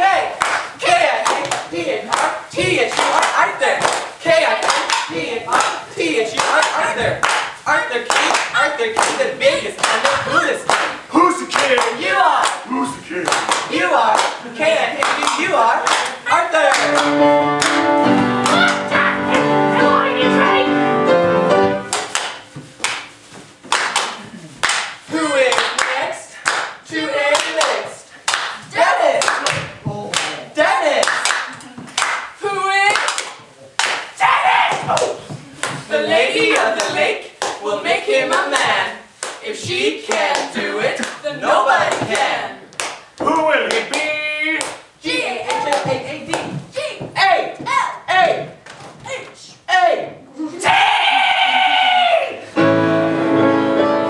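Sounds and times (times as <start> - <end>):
voices chanting in rhythm: 0.0 - 17.2, 25.1 - 31.1, 34.2 - 52.4
sharp claps: 0.4 - 2.3, 6.4 - 9.2, 9.8 - 12.6, 13.2 - 14.4, 15.0 - 17.8, 21.9 - 23.1, 23.7 - 26.8, 27.4 - 28.6, 29.2 - 30.4, 31.0 - 32.3, 32.9 - 34.1, 41.9 - 44.8
sharp handclaps: 0.4 - 2.3, 2.9 - 5.8, 6.4 - 7.5, 8.1 - 9.2, 9.8 - 12.6, 13.2 - 14.4, 15.0 - 17.8, 21.9 - 23.1, 23.7 - 26.8, 27.4 - 28.6, 29.2 - 30.4, 31.0 - 32.3, 32.9 - 34.1, 41.9 - 44.0, 44.6 - 44.8.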